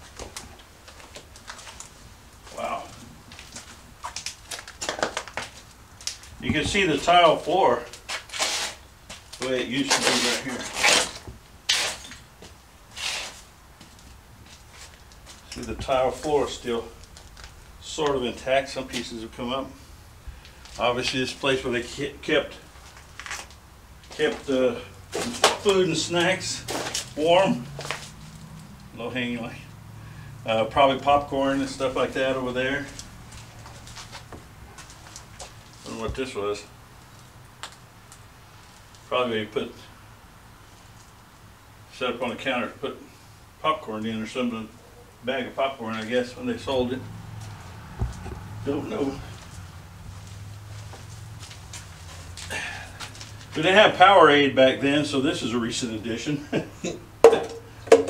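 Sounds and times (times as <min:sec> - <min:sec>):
faint background noise: 0:00.0 - 0:58.0
footstep crunching on debris: 0:22.7 - 0:24.5, 0:25.1 - 0:28.9, 0:31.4 - 0:36.3, 0:47.3 - 0:53.7.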